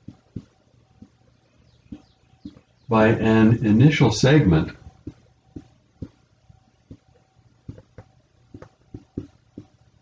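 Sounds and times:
marker tapping on glass: 1.9 - 2.7, 5.0 - 6.2, 6.9 - 9.8
man talking: 2.9 - 4.9.

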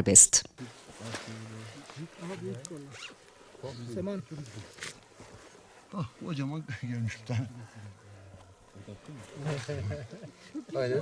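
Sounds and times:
people talking indistinctly: 0.0 - 0.4.

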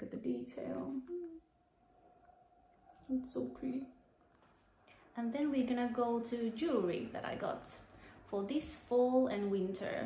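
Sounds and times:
faint steady hum: 0.0 - 10.0
woman speaking: 5.2 - 10.0.

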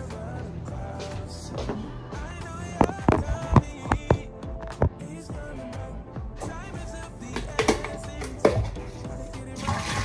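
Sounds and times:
background music: 0.0 - 10.0
drink cup knock: 7.4 - 8.8.

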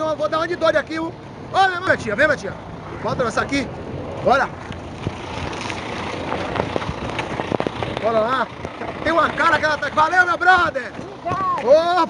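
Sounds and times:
road traffic: 0.0 - 12.0
truck diesel engine running: 0.0 - 12.0.

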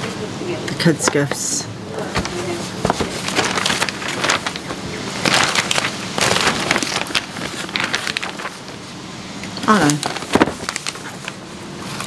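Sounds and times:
wrapping paper rustling: 2.2 - 8.8, 9.7 - 12.0.

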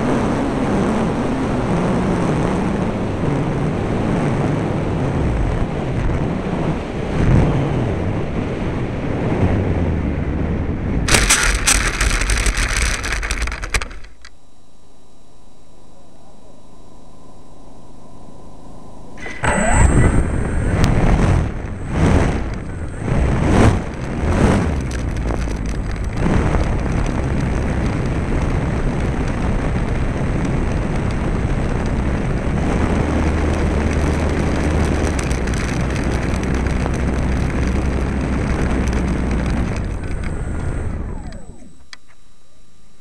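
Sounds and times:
model aeroplane engine revving: 11.1 - 14.3, 18.2 - 42.2.

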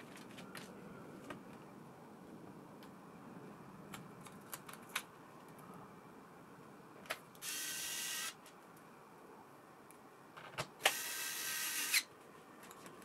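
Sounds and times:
electric screwdriver motor whining: 7.4 - 8.4, 10.8 - 12.0.

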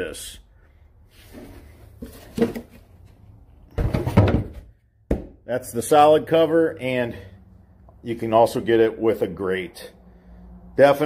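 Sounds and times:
deep plastic thud: 3.7 - 5.4
sharp plastic knock: 5.1 - 5.4.

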